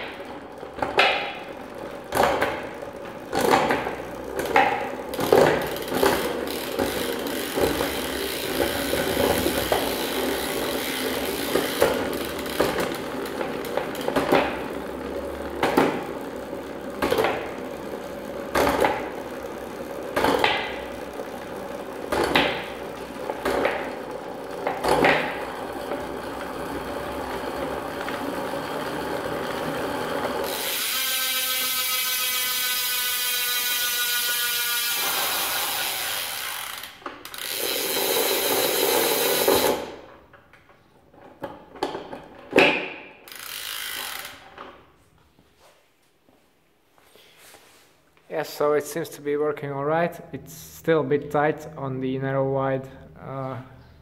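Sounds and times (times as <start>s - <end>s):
bicycle chain whirring: 0.0s - 40.1s, 43.0s - 44.8s.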